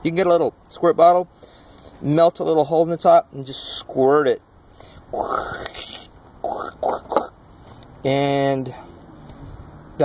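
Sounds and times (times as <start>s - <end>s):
man's breathy mouth puffs: 4.7s - 7.3s
mouth click: 5.2s - 7.4s.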